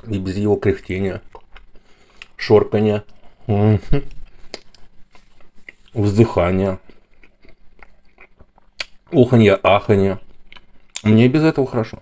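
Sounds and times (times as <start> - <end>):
man speaking: 0.0 - 1.3, 2.4 - 4.1, 5.9 - 6.9, 9.1 - 10.2, 11.0 - 12.0.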